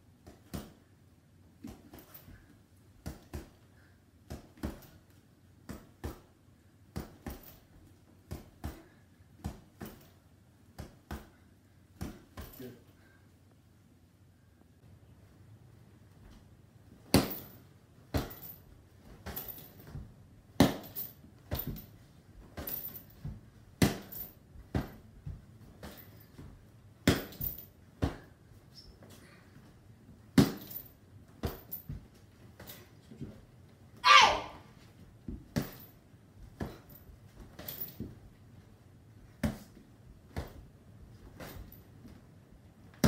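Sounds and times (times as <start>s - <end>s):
punches and kicks hitting bag: 17.0s - 17.5s, 18.1s - 18.5s, 19.1s - 26.1s, 27.0s - 28.4s, 30.3s - 30.8s.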